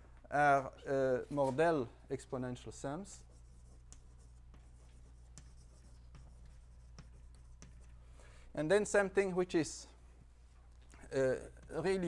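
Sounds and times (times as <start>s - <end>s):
steady low hum: 0.0s - 12.0s
chalk tapping and scratching: 3.0s - 8.2s, 11.5s - 12.0s.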